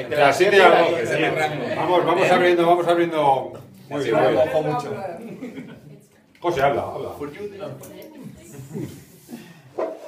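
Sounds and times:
people murmuring and talking: 0.0 - 10.0.

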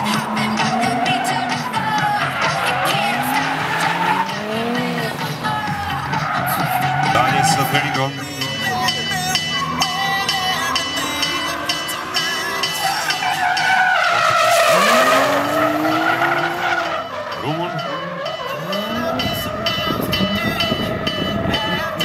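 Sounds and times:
car engine revving: 0.0 - 22.0
tyre squeal and skidding: 0.0 - 22.0.

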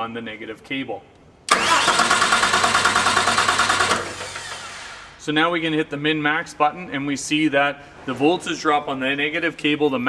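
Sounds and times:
electric starter cranking diesel engine: 1.5 - 5.2.

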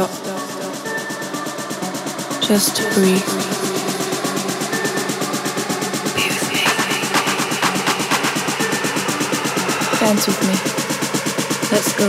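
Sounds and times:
downtempo electronic music: 0.0 - 12.0.

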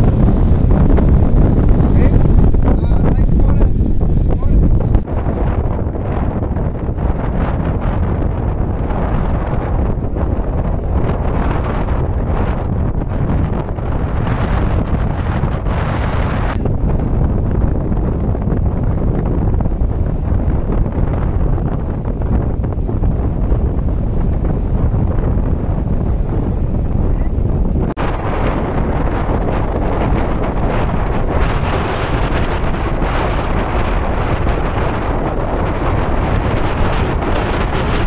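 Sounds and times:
surf breaking: 0.0 - 38.0
wind buffeting microphone: 0.0 - 38.0.

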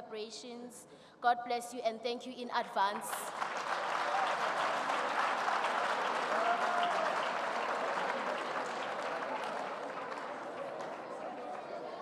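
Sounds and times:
audience applauding: 3.3 - 12.0.

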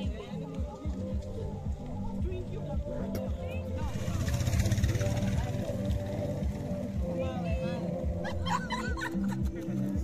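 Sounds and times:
background music with bass line: 0.0 - 10.0
people's voices: 0.0 - 10.0.

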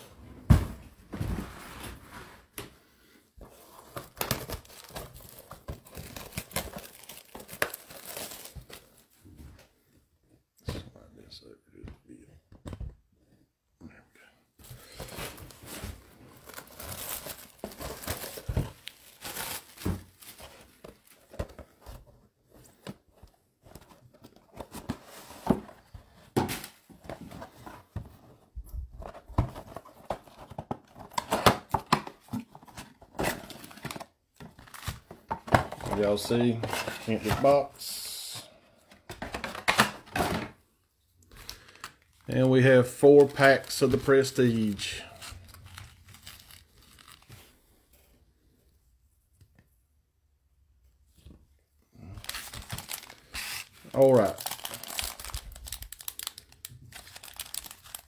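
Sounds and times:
plastic wrap tearing and crinkling: 4.0 - 9.0, 16.4 - 20.6, 43.2 - 47.5, 52.2 - 58.0.

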